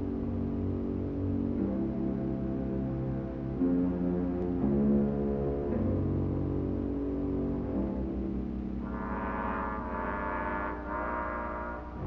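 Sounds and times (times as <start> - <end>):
dark sustained brass chords: 0.0 - 12.0.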